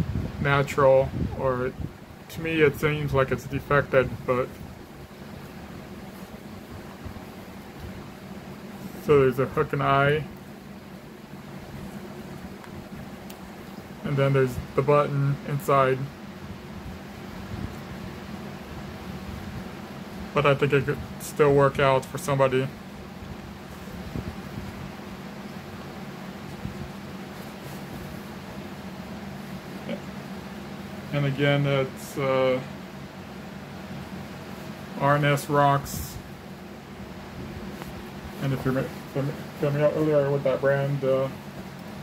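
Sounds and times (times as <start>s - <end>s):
low room hum: 0.0s - 42.0s
steady hiss: 0.0s - 42.0s.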